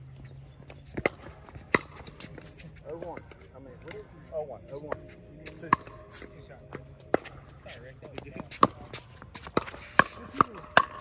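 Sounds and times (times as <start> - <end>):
footsteps on hard court: 4.8 - 11.0
pickleball knocks: 8.4 - 11.0.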